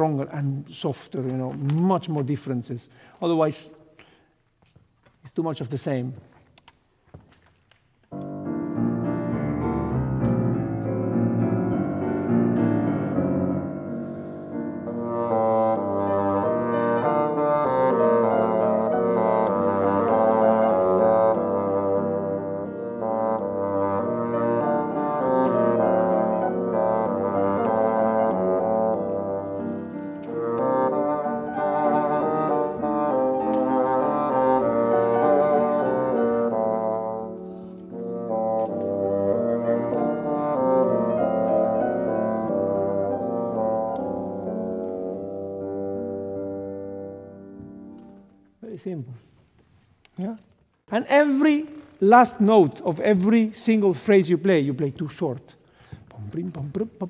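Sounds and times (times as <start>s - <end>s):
piano accompaniment: 8.0s - 48.9s
bassoon melody: 8.1s - 48.6s.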